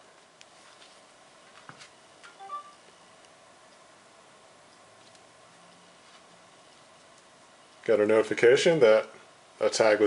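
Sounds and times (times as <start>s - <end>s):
phone electronic chime: 2.4s - 2.8s.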